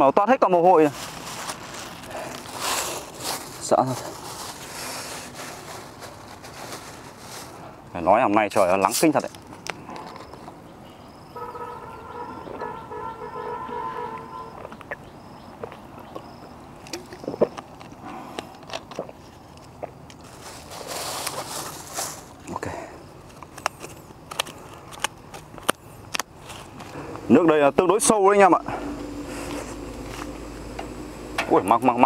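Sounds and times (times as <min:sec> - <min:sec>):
distant horn note: 0:11.4 - 0:14.7, 0:27.0 - 0:31.7.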